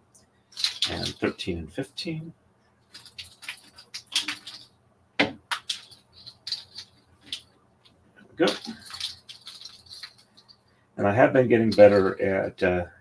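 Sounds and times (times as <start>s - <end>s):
wooden bobbins clacking together: 0.5s - 1.4s, 2.9s - 10.6s, 11.6s - 12.2s.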